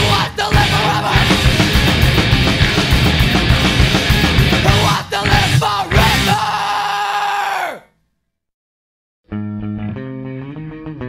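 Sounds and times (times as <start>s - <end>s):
punk rock song held note: 0.0s - 6.7s.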